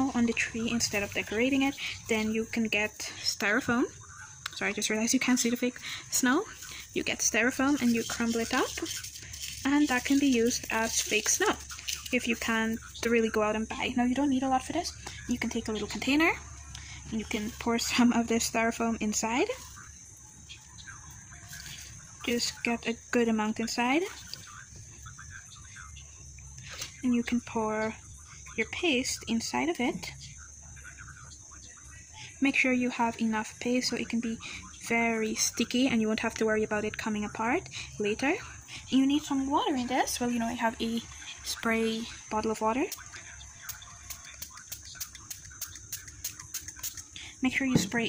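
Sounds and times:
steady high-pitched hiss: 0.0 - 48.0
spray bottle spritzing: 43.7 - 48.0.

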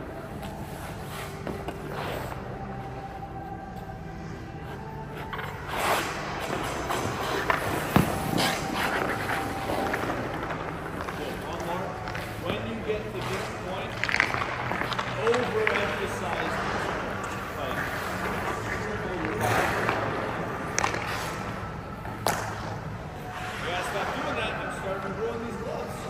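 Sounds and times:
skate blades scraping on ice: 0.3 - 2.6, 5.1 - 26.0.

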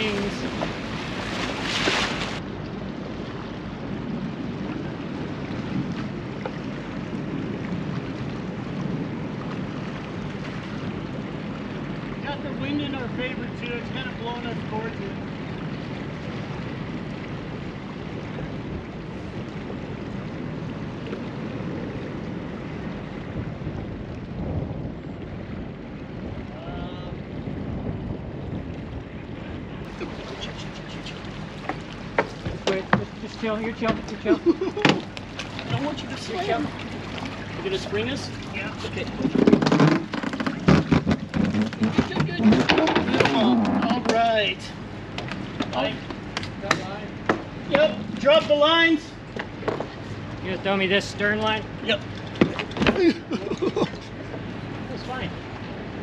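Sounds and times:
boat engine rumble: 0.0 - 56.0
water and wind noise: 0.0 - 56.0.

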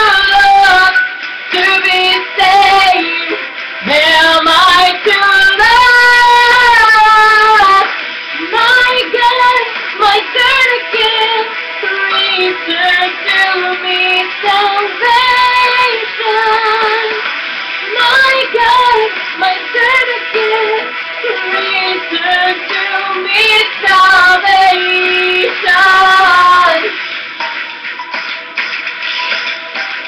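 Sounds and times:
woman singing with vibrato: 0.0 - 27.0.

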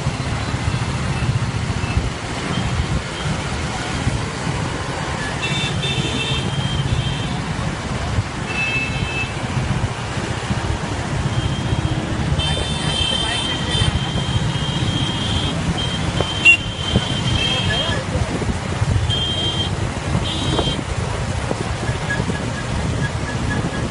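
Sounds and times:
road rumble: 0.0 - 23.9.

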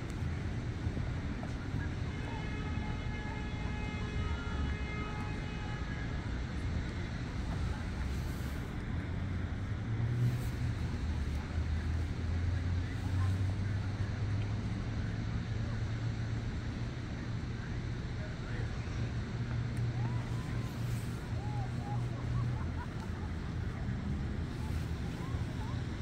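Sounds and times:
distant traffic: 0.0 - 26.0.

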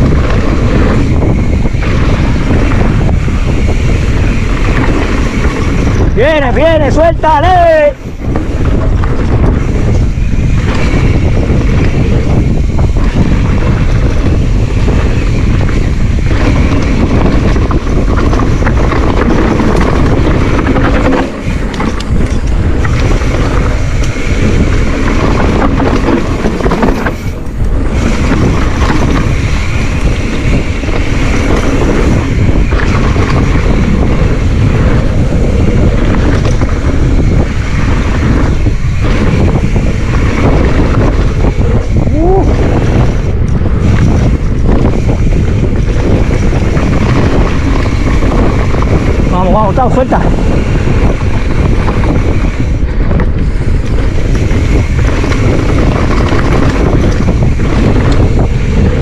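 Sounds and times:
tyres rolling over dirt: 0.0 - 6.7, 7.8 - 59.0
wind buffeting microphone: 0.0 - 59.0.

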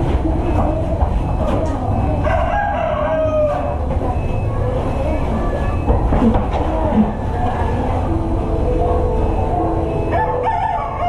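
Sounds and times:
rooster crowing: 2.2 - 3.7, 10.1 - 11.0.

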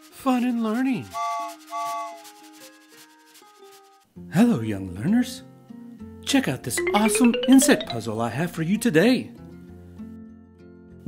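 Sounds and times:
held musical notes: 6.8 - 8.6.

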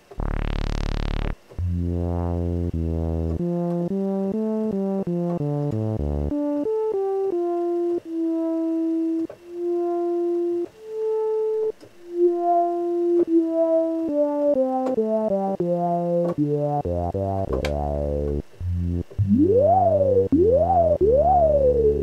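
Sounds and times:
synthesizer sawtooth notes: 0.0 - 9.0, 9.6 - 22.0.

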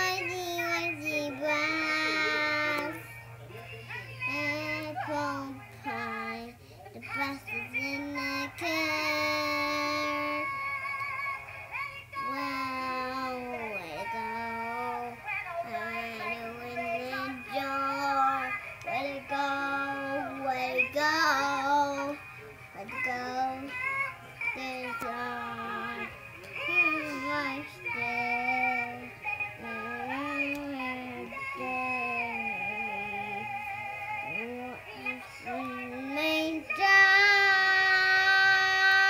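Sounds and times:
doll singing through small speaker: 0.0 - 39.0.

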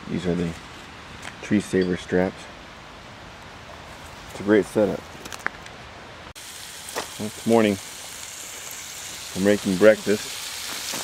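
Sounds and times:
low hiss: 5.8 - 11.0
bacon sizzling in a skillet: 6.4 - 11.0.

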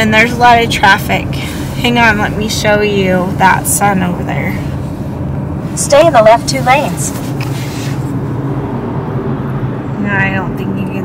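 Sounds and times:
car engine and tyre noise: 0.0 - 11.0.

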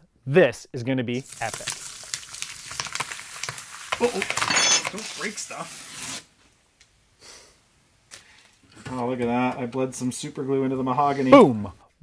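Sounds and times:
man's voice: 8.9 - 12.0.

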